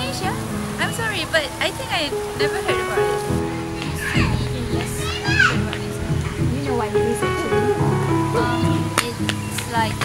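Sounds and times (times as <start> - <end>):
background music: 0.0 - 10.0
person speaking: 0.0 - 10.0.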